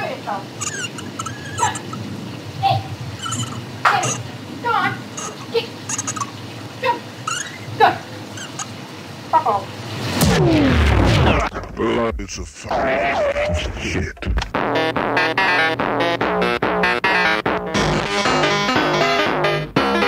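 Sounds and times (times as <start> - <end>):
sliding squeaks and chirps: 0.6 - 2.0, 3.1 - 4.3, 5.1 - 6.6, 7.2 - 8.8.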